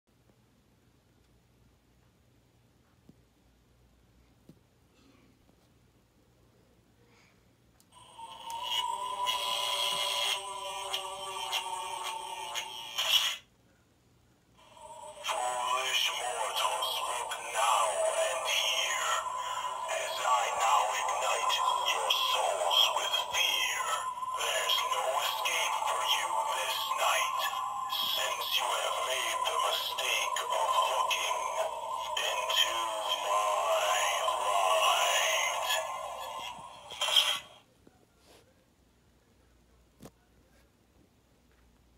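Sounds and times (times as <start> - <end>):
eerie music from toy prop: 8.0 - 13.4, 14.6 - 37.6
wavering wordless voice sounds: 8.0 - 13.4, 14.6 - 37.6.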